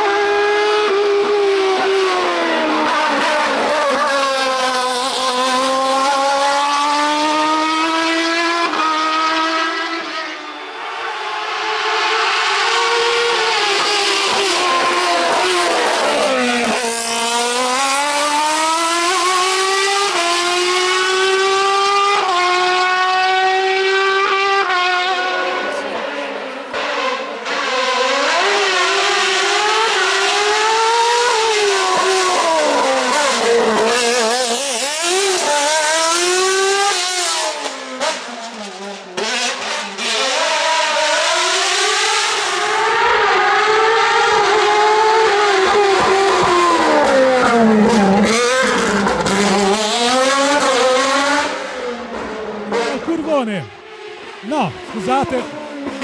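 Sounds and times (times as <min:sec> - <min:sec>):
race car engine at full throttle: 0:00.0 - 0:56.0.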